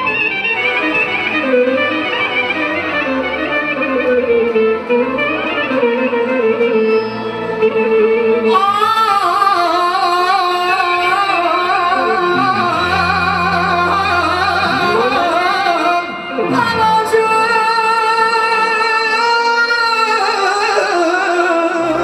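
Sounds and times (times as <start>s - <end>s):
clarinet melody: 0.0s - 8.5s, 11.6s - 17.2s
man singing amplified: 8.1s - 22.0s
band accompaniment: 11.0s - 22.0s.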